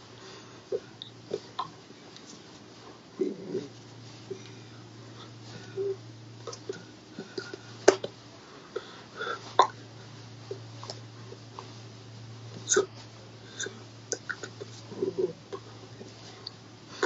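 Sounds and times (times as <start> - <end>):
steady low hum: 0.0 - 17.0
mouth noises: 12.6 - 15.8.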